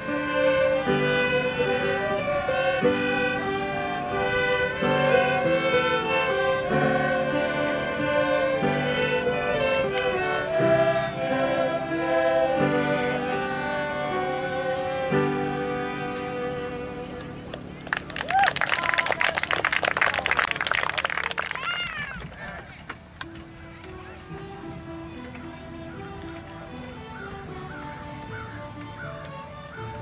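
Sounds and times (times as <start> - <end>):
violins playing a tune: 0.0 - 18.1, 23.2 - 30.0
applause: 17.5 - 22.6.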